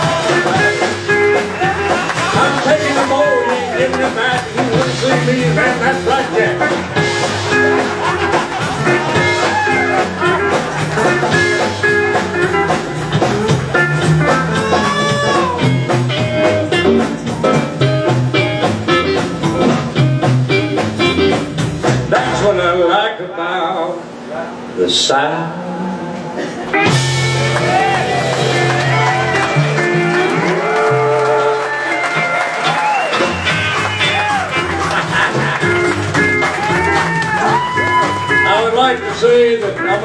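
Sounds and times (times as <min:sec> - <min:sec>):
drum beat: 0:00.0 - 0:22.4, 0:26.8 - 0:40.0
electric guitar: 0:00.0 - 0:22.5, 0:25.4 - 0:40.0
upright bass: 0:00.0 - 0:23.0, 0:24.9 - 0:40.0.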